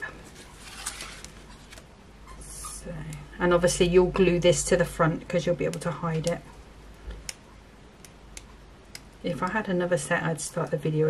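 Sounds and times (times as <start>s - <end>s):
paper card handling: 0.2s - 1.9s.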